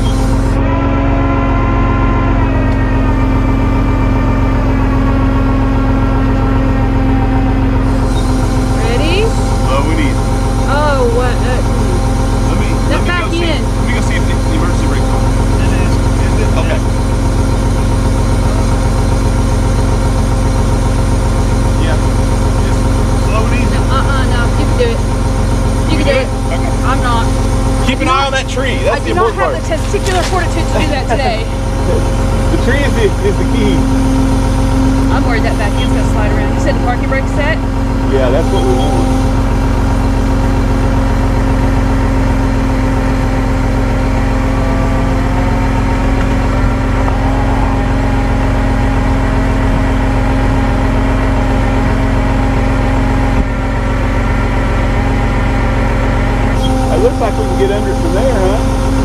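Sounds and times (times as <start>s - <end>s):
hydraulic whine: 0.0s - 59.0s
truck engine running: 0.0s - 59.0s
whine falling in pitch: 0.0s - 59.0s.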